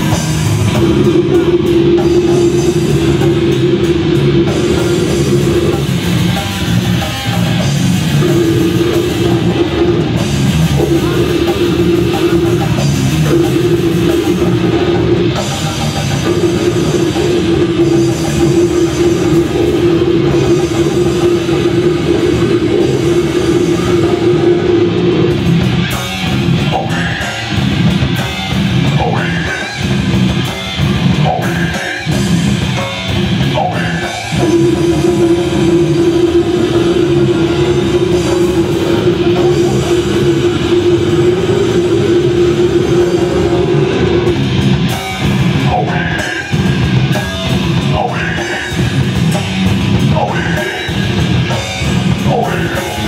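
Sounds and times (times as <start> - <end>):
metal band playing live: 0.0 - 53.0.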